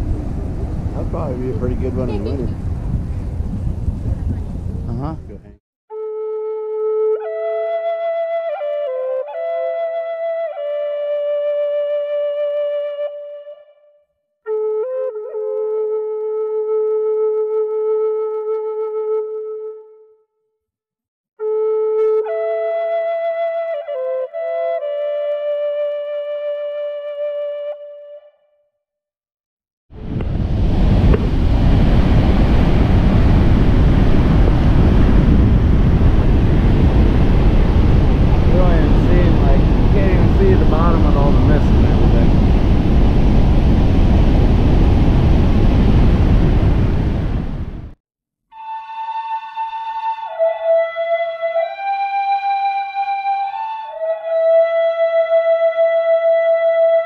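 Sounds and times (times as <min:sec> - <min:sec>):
loud steady rushing noise: 0:00.0 - 0:05.5, 0:30.0 - 0:47.8
flute-like melody: 0:01.0 - 0:02.5, 0:05.9 - 0:20.4, 0:21.4 - 0:28.8, 0:37.4 - 0:42.3, 0:48.5 - 0:57.0.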